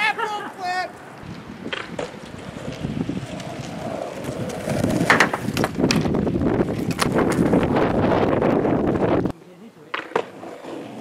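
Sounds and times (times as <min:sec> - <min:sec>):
wind buffeting microphone: 0:01.0 - 0:09.4.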